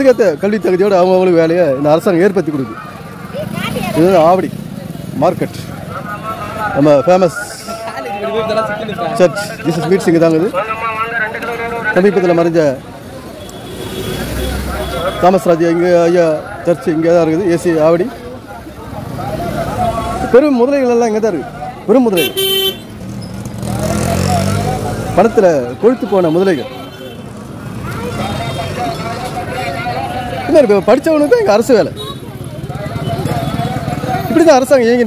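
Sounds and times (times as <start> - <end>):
crowd chatter: 0.0 - 35.0
street traffic noise: 0.0 - 35.0
vehicle engine rumble passing: 22.9 - 25.9.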